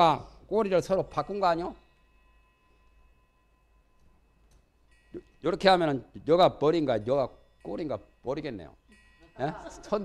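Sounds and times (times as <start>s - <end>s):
faint steady high tone: 0.0s - 10.0s.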